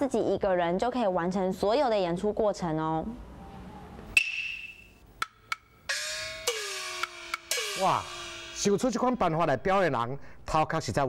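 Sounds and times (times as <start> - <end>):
gong with sliding pitch: 5.9 - 9.7
sharp ringing strike: 5.9 - 10.0.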